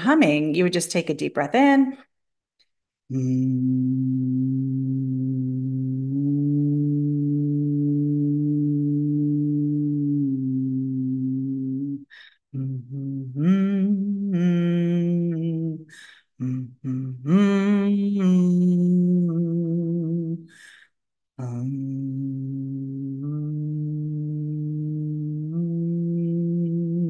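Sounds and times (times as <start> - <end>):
woman humming: 3.1 - 20.5, 21.4 - 27.0
woman breathing in: 15.9 - 16.3, 20.5 - 21.0.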